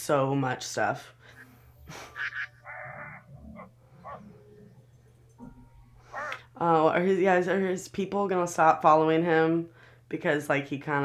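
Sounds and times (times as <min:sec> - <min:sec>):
man growling: 0:02.9 - 0:04.2.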